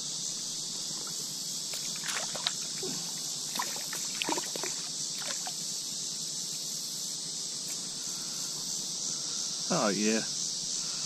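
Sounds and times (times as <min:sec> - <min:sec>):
high drone of insects: 0:00.0 - 0:11.0
fish splashing in shallow water: 0:00.9 - 0:02.9, 0:03.5 - 0:05.6.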